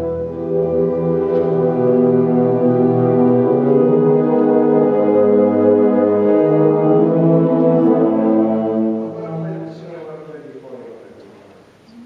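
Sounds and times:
wind band brass chords: 0.0s - 10.0s.

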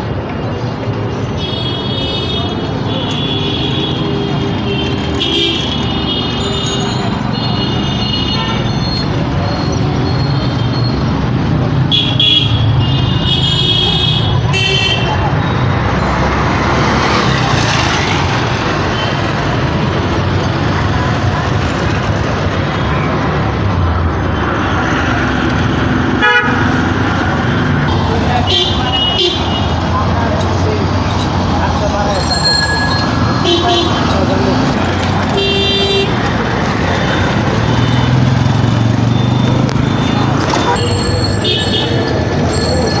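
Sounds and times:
road noise: 0.0s - 43.0s
vehicle horn toots: 26.2s - 26.6s.

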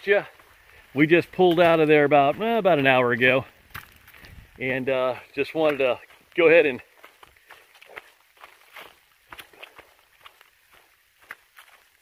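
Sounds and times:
footsteps on leaf litter: 0.0s - 12.0s.

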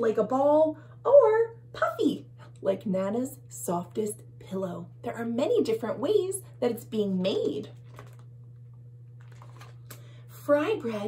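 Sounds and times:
low steady hum: 0.0s - 11.0s
book page turning: 7.8s - 8.3s, 9.2s - 9.9s.

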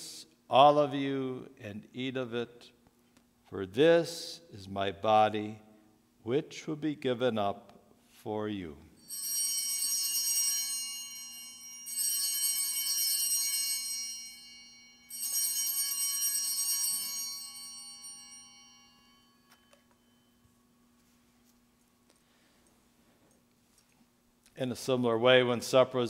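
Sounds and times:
altar bells ringing: 9.0s - 21.5s.

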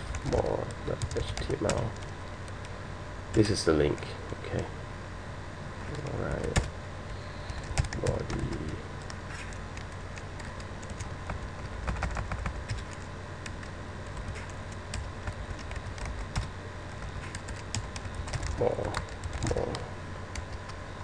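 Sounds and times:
computer keyboard typing: 0.1s - 2.7s, 5.9s - 6.7s, 7.5s - 20.8s.

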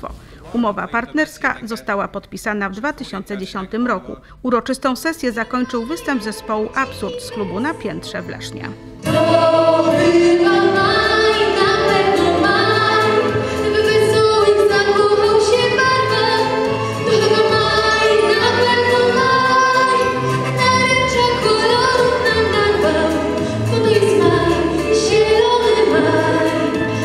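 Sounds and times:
steady bass line: 8.4s - 27.0s
children singing together: 9.0s - 27.0s.

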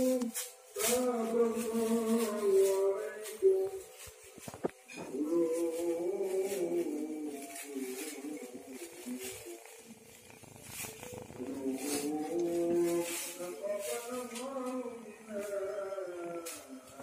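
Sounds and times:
plastic bag crinkling: 0.0s - 14.8s
man reciting melodically: 0.0s - 17.0s.

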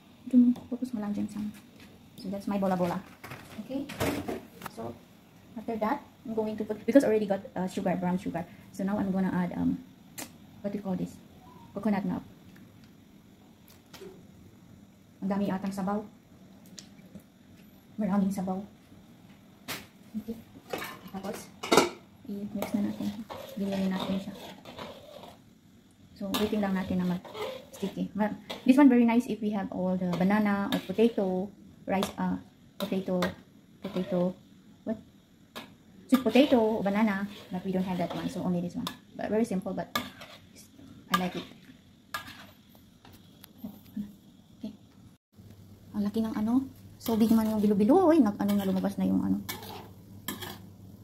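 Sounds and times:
metal spatula scraping a wok: 22.5s - 25.5s, 26.2s - 29.0s, 30.0s - 32.2s, 32.8s - 34.4s, 35.5s - 39.0s, 39.7s - 42.7s, 47.0s - 50.7s.

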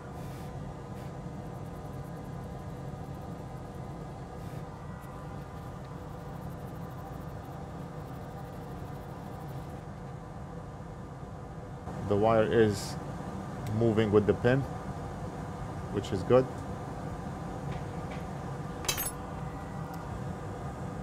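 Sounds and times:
low machine hum: 0.0s - 21.0s.

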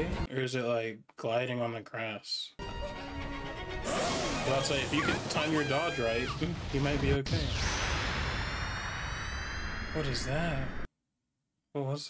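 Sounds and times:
high whine: 7.3s - 10.9s.

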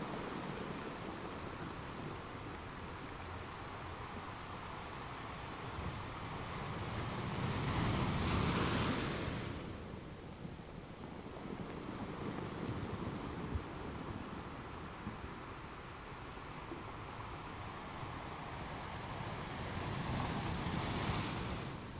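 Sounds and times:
surf washing up a beach: 0.0s - 21.9s.

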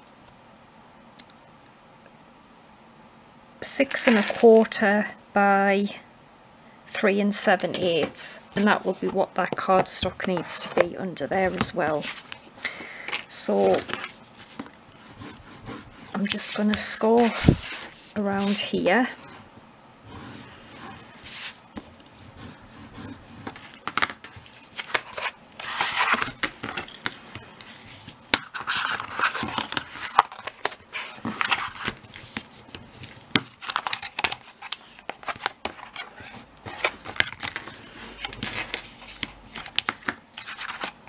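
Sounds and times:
paper rustling: 4.0s - 4.7s, 7.9s - 18.8s, 20.4s - 22.2s, 22.8s - 41.0s
scraping strokes along card: 14.4s - 26.2s.

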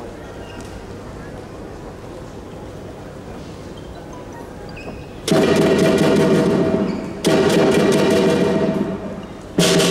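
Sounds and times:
drum gong and cymbals rolling: 5.2s - 9.9s.

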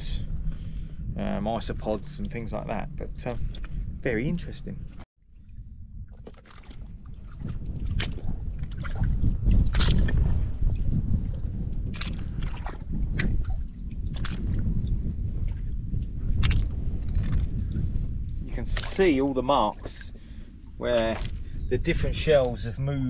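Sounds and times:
low wind rumble on microphone: 0.0s - 23.0s
footsteps splashing through shallow water: 6.1s - 10.9s, 11.7s - 14.6s, 15.4s - 17.9s.

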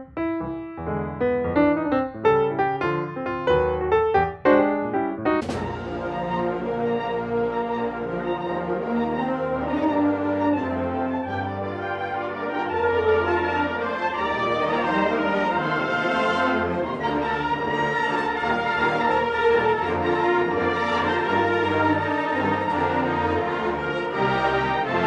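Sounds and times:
concert band brass chords: 5.3s - 7.9s.

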